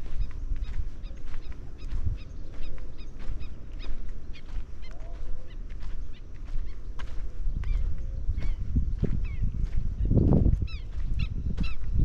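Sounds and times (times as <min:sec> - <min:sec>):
birds calling: 0:00.0 - 0:12.0
footsteps on dirt path: 0:00.0 - 0:12.0.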